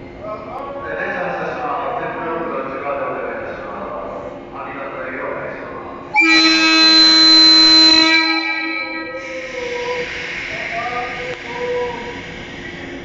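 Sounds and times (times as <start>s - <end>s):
electric train horn blast: 6.1s - 9.9s
steady hiss: 9.0s - 13.0s.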